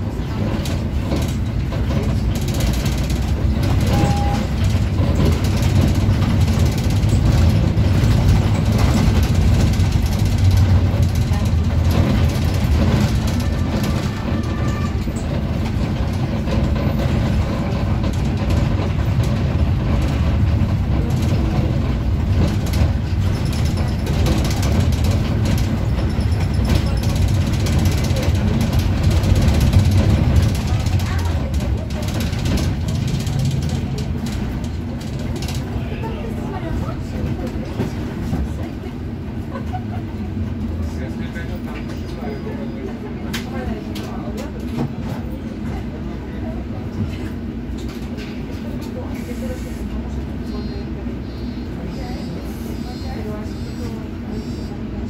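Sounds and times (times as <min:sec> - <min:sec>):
bus engine and tyres rumbling: 0:00.0 - 0:55.0
knocks and rattles in cabin: 0:00.2 - 0:35.8.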